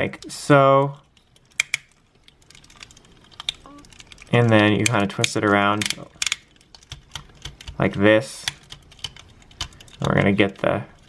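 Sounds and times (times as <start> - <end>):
plastic toy parts clicking: 0.1 - 11.0.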